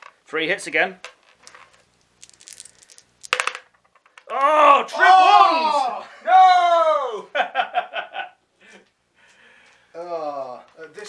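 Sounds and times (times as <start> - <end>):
plastic dice rattling: 1.0 - 4.4.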